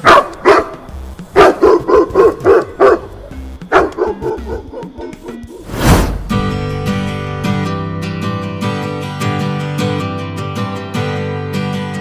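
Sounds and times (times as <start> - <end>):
loud whoosh: 5.6 - 8.4.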